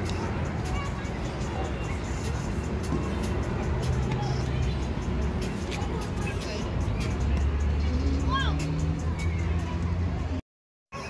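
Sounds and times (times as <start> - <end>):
background music: 0.0 - 10.3
road traffic rumble: 0.0 - 10.4.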